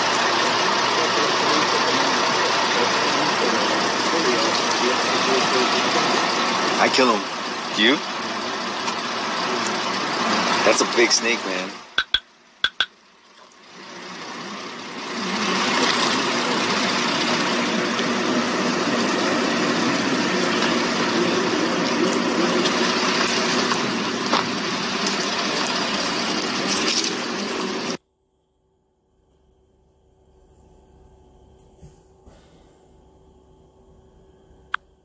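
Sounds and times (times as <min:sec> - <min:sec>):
vehicle engine humming: 0:00.0 - 0:28.0.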